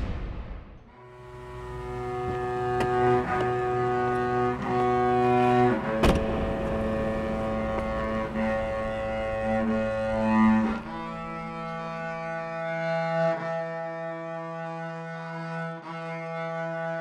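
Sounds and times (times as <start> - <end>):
low string drone chord: 0.9 - 17.0.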